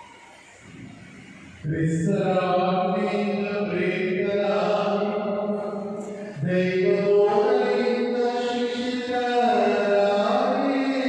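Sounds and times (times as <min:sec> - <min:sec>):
liturgical chant: 0:01.6 - 0:11.0.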